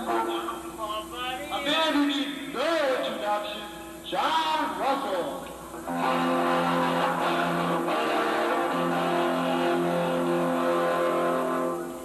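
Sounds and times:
rock band playing loud: 0:05.9 - 0:12.0.

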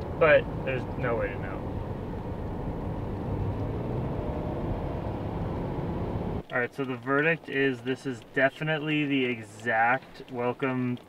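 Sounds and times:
car interior road and engine noise: 0:00.0 - 0:11.0.

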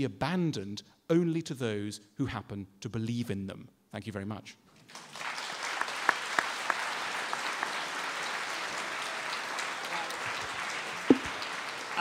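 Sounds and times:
audience applause: 0:04.9 - 0:12.0.

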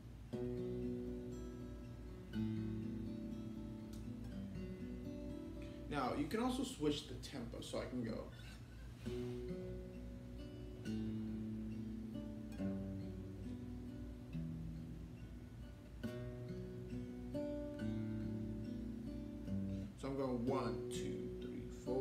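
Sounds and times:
acoustic guitar fingerpicking: 0:00.0 - 0:06.5, 0:08.4 - 0:22.0.

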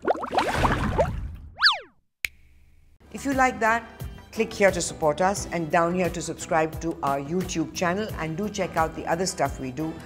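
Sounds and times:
cartoon whistle glide: 0:01.6 - 0:01.9.

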